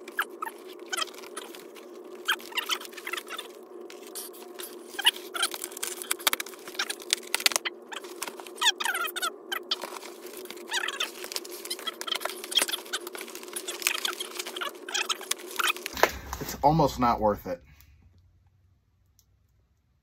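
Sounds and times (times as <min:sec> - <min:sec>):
packing tape ripping: 0:00.0 - 0:16.4
cardboard scraping: 0:00.0 - 0:17.0.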